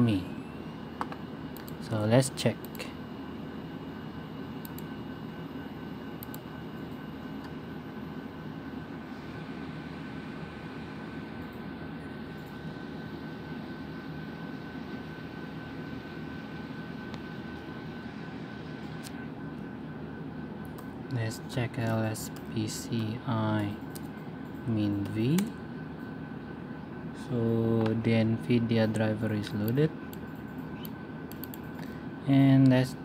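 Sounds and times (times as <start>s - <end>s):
faint high whine: 0.0s - 33.0s
low background hum: 0.0s - 33.0s.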